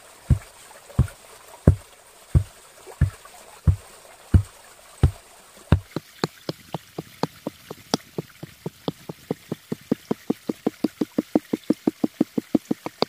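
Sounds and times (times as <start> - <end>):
wooden pole thudding on earth: 0.3 - 1.8, 2.4 - 3.8, 4.4 - 10.1.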